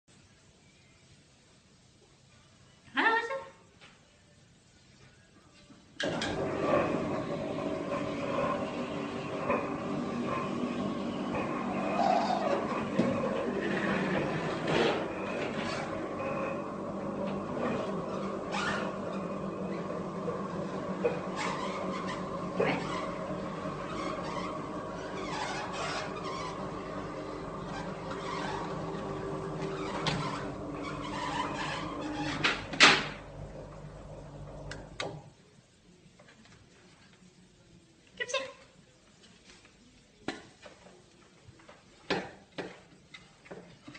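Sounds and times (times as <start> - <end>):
stair lift motor humming: 6.0 - 35.2.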